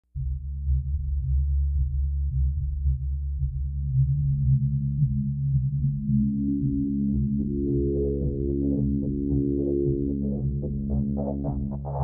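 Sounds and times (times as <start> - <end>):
synthesizer bass drone: 0.2 - 12.0.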